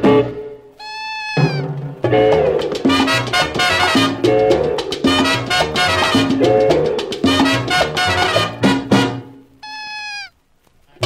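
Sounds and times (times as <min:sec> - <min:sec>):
low horns: 0:01.4 - 0:06.7, 0:07.3 - 0:10.2
band with percussion: 0:02.3 - 0:09.2.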